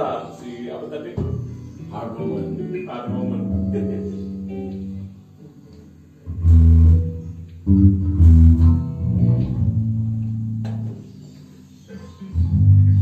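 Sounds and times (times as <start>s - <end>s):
electric bass guitar: 1.2s - 13.0s
electric guitar: 1.2s - 13.0s.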